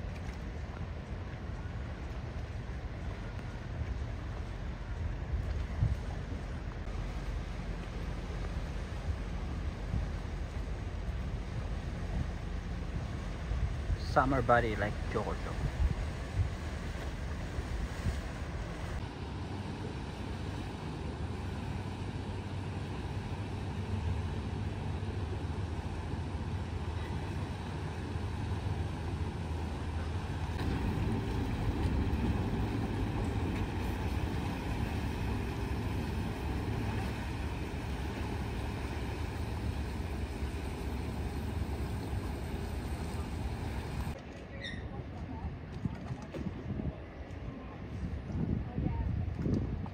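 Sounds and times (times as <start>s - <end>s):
wind noise: 0.0s - 6.9s, 15.4s - 19.1s, 45.3s - 49.9s
boat engines droning: 0.0s - 46.2s
water noise: 0.0s - 48.0s.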